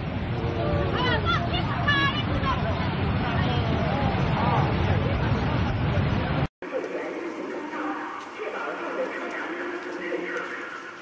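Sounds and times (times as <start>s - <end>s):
people talking: 0.4s - 11.0s.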